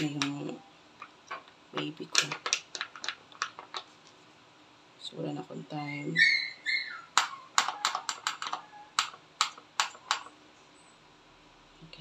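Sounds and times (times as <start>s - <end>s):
dry food tapping into a bowl: 0.0s - 3.9s, 7.2s - 10.3s
dog whining: 5.8s - 8.0s.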